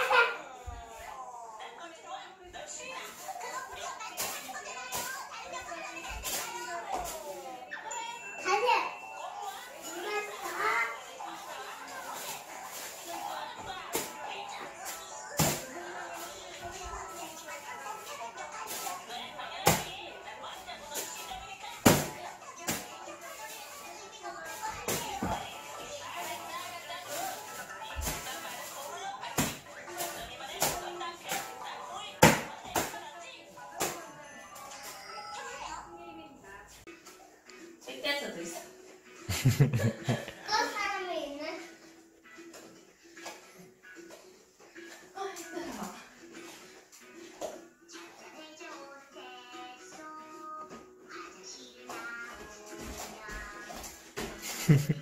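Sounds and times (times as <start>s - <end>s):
background music: 0.0s - 55.0s.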